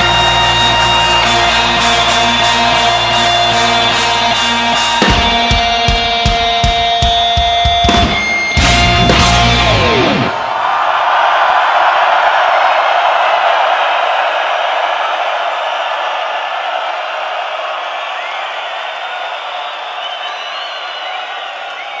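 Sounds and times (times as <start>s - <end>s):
whistles: 0.0s - 5.1s, 17.8s - 22.0s
stadium crowd cheering and shouting: 0.0s - 22.0s.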